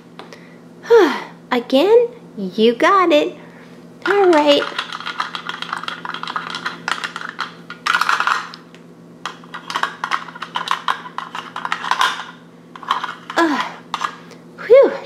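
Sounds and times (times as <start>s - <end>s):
plastic toys clicking on stone: 4.1s - 8.6s.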